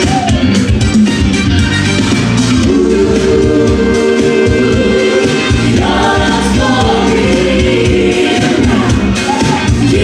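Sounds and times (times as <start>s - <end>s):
loud pop music with pulsing beat: 0.0s - 10.0s
vocalists singing together: 2.6s - 10.0s.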